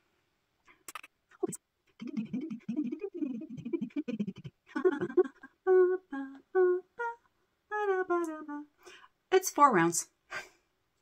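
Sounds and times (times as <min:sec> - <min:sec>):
woman murmuring: 0:01.4 - 0:08.7.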